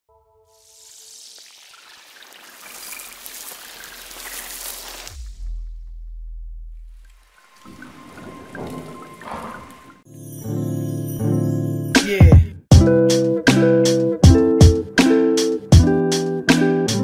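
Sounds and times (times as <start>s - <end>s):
fizzing swell: 0.5s - 5.1s, 7.0s - 10.1s
spattering hiss: 0.6s - 5.2s.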